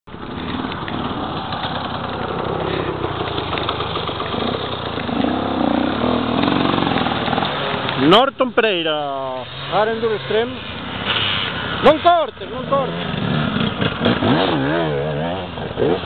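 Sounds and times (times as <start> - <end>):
motorcycle engine revving: 0.1 - 16.0.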